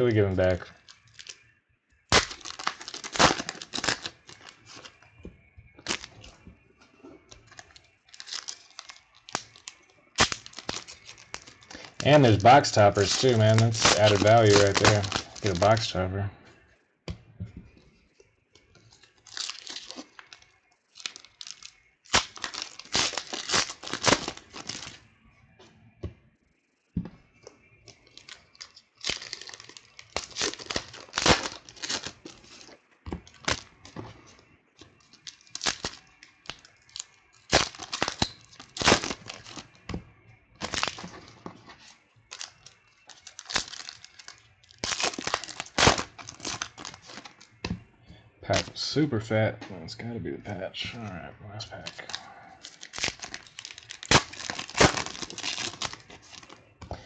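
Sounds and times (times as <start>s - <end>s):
foil wrapper crinkling: 0.0s - 1.5s, 2.1s - 5.1s, 5.8s - 6.3s, 7.2s - 16.0s, 18.8s - 25.0s, 27.9s - 34.4s, 35.0s - 39.8s, 40.6s - 47.6s, 48.5s - 48.7s, 51.8s - 56.6s
trading cards rustling: 2.1s - 5.2s, 5.8s - 6.4s, 7.2s - 16.0s, 18.8s - 25.0s, 27.9s - 34.4s, 35.0s - 39.8s, 40.6s - 47.6s, 48.5s - 48.7s, 51.8s - 57.0s.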